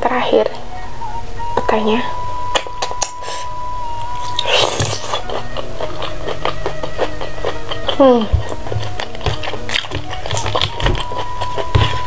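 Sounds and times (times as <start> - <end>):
background music: 0.0 - 12.0
biting into chicken: 4.0 - 12.0
wet chewing and mouth clicks: 4.0 - 12.0.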